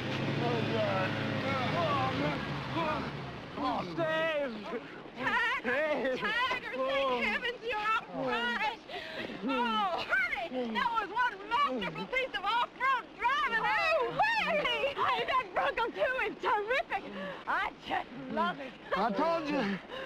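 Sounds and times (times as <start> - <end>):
people exclaiming and laughing: 1.6 - 20.0.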